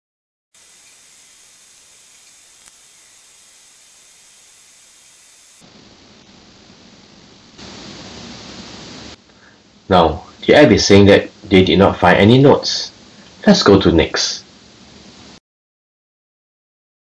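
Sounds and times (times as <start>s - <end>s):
recording background hiss: 0.6s - 15.4s.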